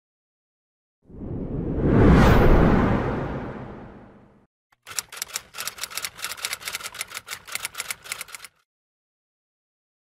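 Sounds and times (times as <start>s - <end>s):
whoosh: 1.1s - 4.4s
typewriter key clicks: 4.8s - 8.6s.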